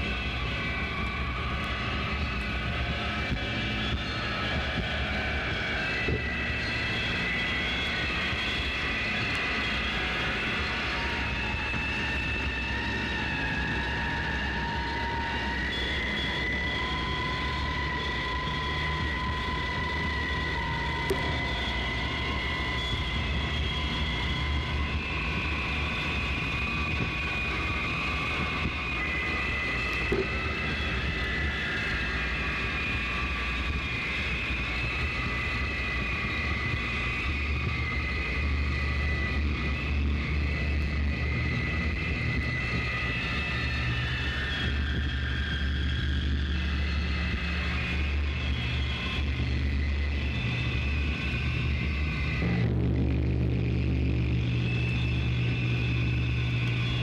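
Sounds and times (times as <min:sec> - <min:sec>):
noise drone music: 0:00.0 - 0:57.0.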